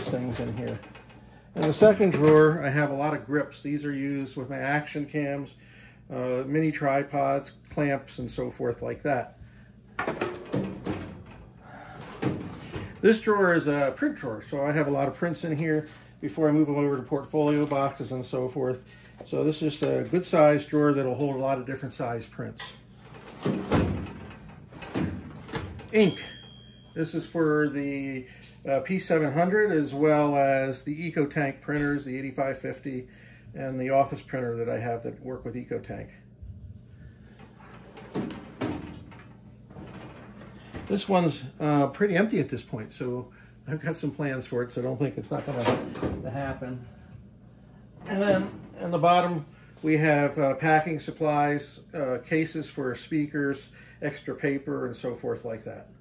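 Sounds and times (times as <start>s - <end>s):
metal drawers sliding: 10.0s - 13.2s, 23.0s - 26.2s, 37.4s - 41.0s, 45.3s - 46.5s, 48.0s - 48.8s.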